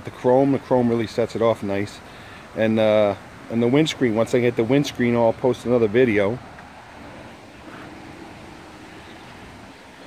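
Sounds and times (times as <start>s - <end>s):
faint steady hum: 0.0s - 10.0s
low rumble and hiss: 0.0s - 10.0s.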